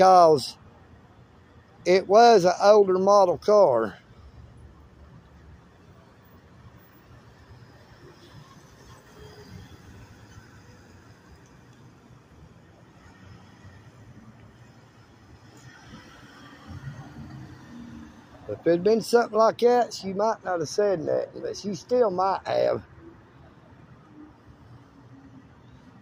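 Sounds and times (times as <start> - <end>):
vehicle engines rumbling: 0.0 - 26.0
car driving past: 15.4 - 18.5.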